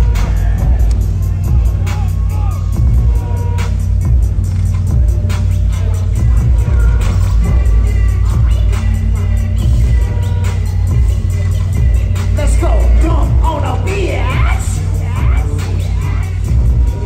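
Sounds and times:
heavy bass beat: 0.0 - 17.0
live rap music: 0.0 - 17.0.

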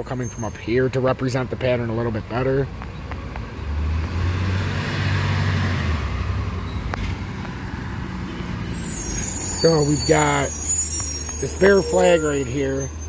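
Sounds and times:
vehicle passing with road noise: 0.0 - 13.0.

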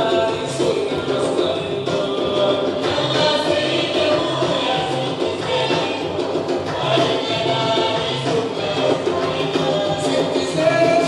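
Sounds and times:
folk dance music: 0.0 - 11.0
group of voices singing: 0.0 - 11.0.

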